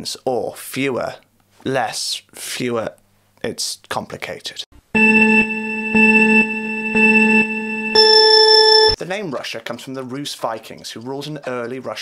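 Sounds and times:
electronic countdown beeps: 0:05.0 - 0:09.0.

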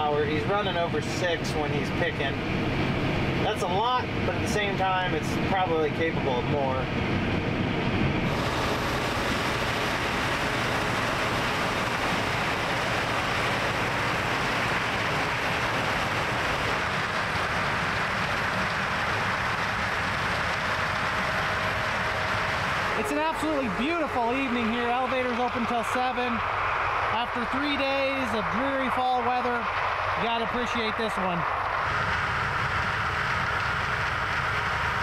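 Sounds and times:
harvest machinery rumbling: 0:00.0 - 0:35.0.

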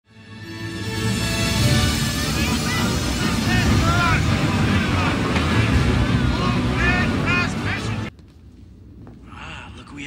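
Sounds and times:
film music: 0:00.1 - 0:08.2.

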